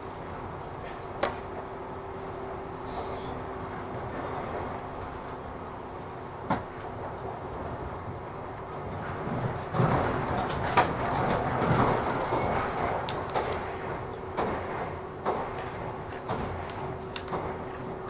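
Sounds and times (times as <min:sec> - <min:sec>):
train cabin rumble: 0:00.0 - 0:18.0.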